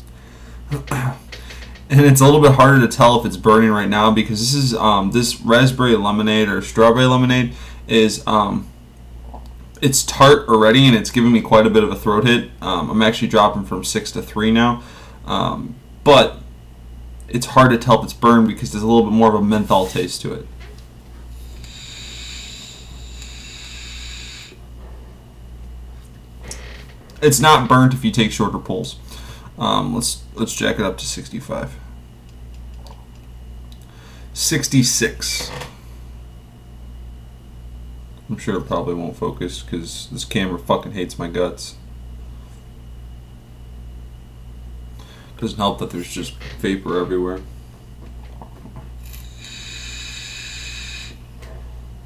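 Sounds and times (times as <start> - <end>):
low hum with faint hiss: 0.0 - 52.0
breathy exhale: 7.5 - 7.8, 14.8 - 15.2, 21.4 - 24.6, 29.0 - 29.5, 45.0 - 45.4, 49.2 - 51.2
vape tank hissing: 21.4 - 24.6, 49.0 - 51.2.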